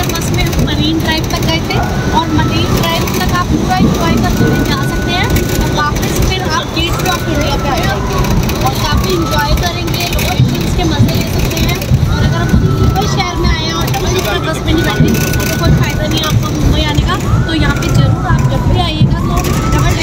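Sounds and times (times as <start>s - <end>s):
bus road rumble: 0.0s - 20.0s
voices talking: 0.0s - 20.0s.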